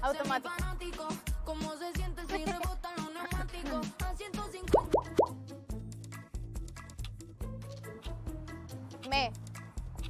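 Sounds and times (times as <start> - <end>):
background music with bass: 0.0 - 10.0
rising bloop pop effects: 4.7 - 5.4.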